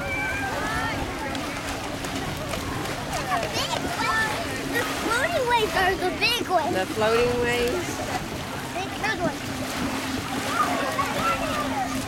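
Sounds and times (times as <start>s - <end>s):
distant indistinct voices: 0.0s - 12.0s
small waves lapping shore: 0.0s - 12.0s.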